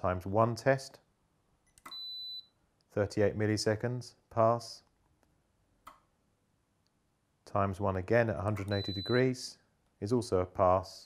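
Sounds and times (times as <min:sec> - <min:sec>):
tester click: 0:08.4 - 0:09.3.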